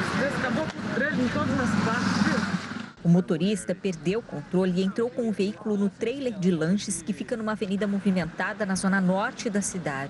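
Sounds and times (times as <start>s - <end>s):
people talking: 0.0s - 10.0s
road traffic noise: 0.0s - 10.0s.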